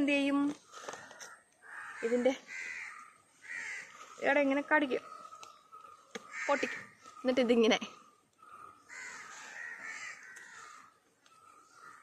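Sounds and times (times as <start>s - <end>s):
crows cawing: 0.8s - 12.0s.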